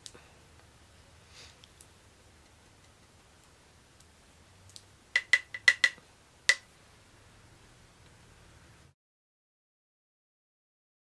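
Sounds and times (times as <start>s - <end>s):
brush tapping candle lid rim: 5.2s - 6.6s.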